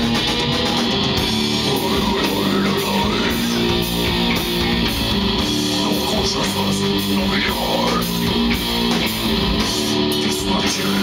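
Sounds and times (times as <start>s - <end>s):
drums: 0.0s - 11.0s
electric guitars and bass riff: 0.0s - 11.0s.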